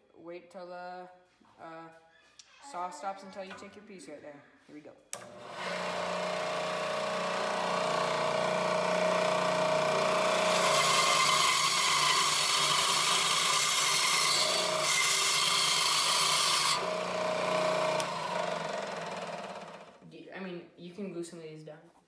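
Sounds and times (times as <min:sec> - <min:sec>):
bandsaw motor hum: 0:05.2 - 0:20.0
saw blade rasping through wood: 0:05.7 - 0:19.2.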